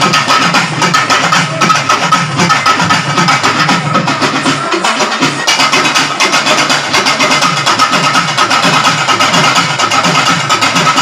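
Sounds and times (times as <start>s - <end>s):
frame and barrel drums: 0.0s - 11.0s.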